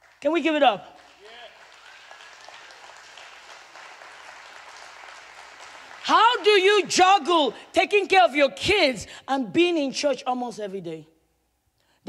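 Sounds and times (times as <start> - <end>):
crowd applauding: 0.0 - 7.3.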